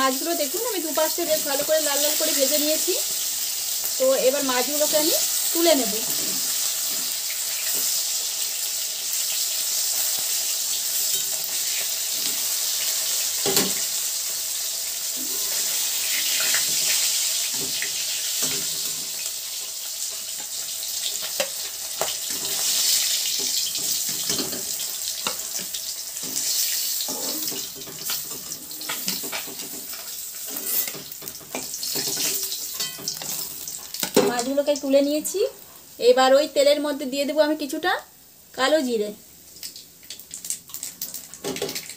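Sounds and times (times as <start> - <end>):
fish sizzling in oil: 0.0 - 41.9
metal spatula scraping pan: 26.2 - 33.5.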